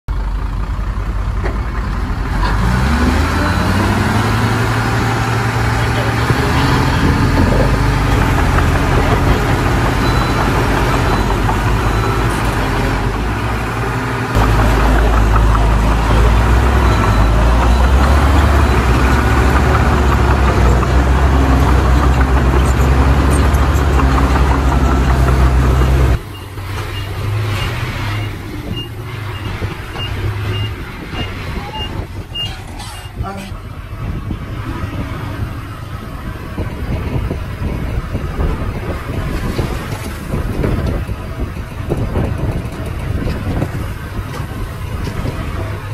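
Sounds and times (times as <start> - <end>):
dump truck diesel engine: 0.1 - 45.9
high beeping: 6.0 - 13.2, 13.8 - 33.2.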